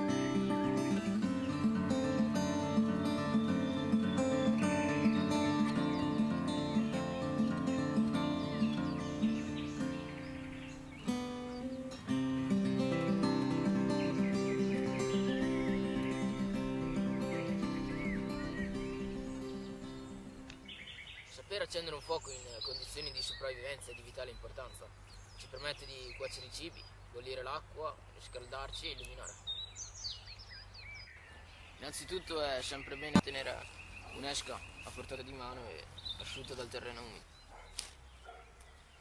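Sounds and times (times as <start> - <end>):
plucked string music: 0.0 - 20.7
faint bird chirps: 1.0 - 12.2, 12.8 - 39.0.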